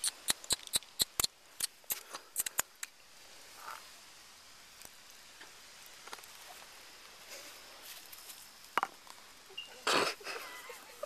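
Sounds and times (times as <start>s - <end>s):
sharp light clicks: 0.0s - 3.0s.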